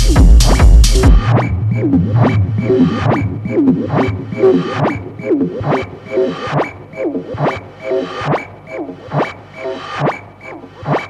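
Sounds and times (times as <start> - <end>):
clicking percussion hits: 0.0 - 9.5
falling synth blips: 1.1 - 11.0.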